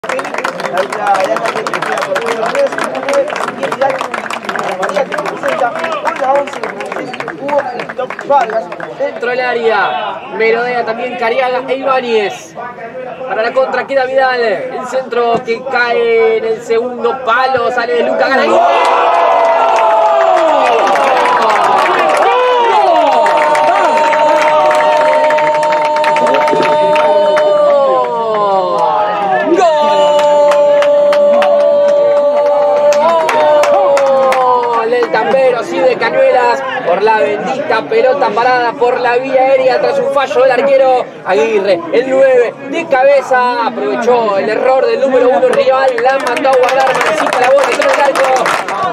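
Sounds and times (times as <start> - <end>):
hand claps: 0.0 - 8.9, 23.1 - 28.9, 30.1 - 35.2, 45.4 - 48.9
crowd shouting: 18.0 - 37.8.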